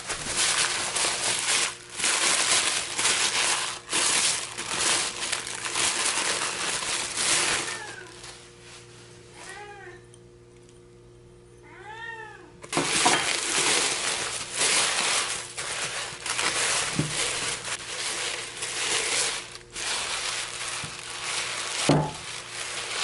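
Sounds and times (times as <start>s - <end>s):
tissue paper crinkling: 0.0s - 8.9s, 12.7s - 23.0s
cat meowing: 7.4s - 8.2s, 9.4s - 10.1s, 11.6s - 12.6s.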